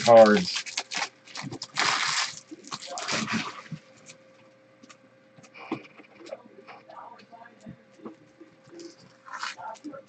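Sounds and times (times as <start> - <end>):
foil wrapper tearing and crinkling: 0.0 - 4.1.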